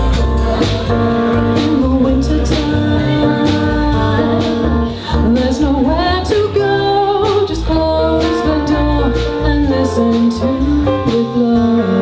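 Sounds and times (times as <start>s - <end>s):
funk jazz band playing: 0.0s - 12.0s
woman singing: 0.4s - 12.0s.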